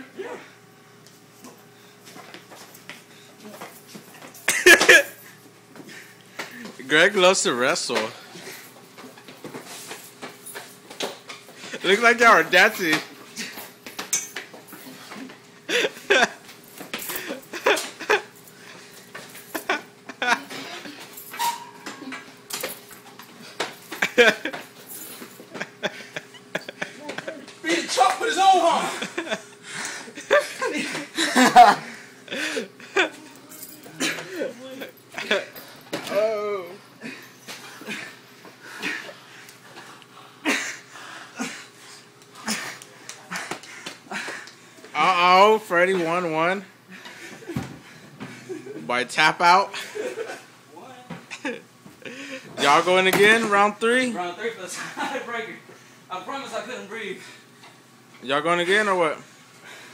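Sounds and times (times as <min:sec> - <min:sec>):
men grunting and straining: 0:00.0 - 0:00.7, 0:23.4 - 0:41.8, 0:42.4 - 0:44.6
knocks and scuffing of bodies: 0:01.2 - 0:06.9, 0:07.9 - 0:15.6
strained heavy breaths: 0:29.6 - 0:30.2, 0:37.0 - 0:44.9, 0:46.8 - 0:48.7.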